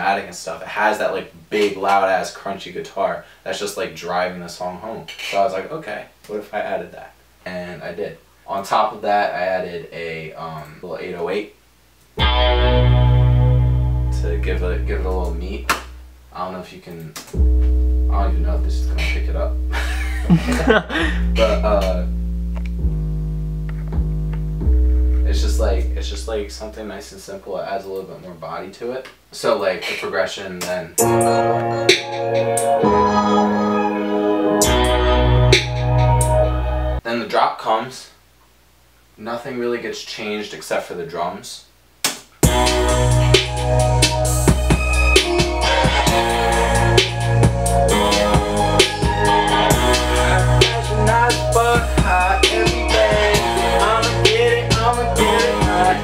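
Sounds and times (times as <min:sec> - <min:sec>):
sustained synth chords: 0:12.2 - 0:16.0, 0:17.4 - 0:26.5, 0:31.0 - 0:37.0, 0:42.4 - 0:56.0
deep bass: 0:12.2 - 0:16.2, 0:17.4 - 0:27.0, 0:34.6 - 0:37.0, 0:42.4 - 0:56.0.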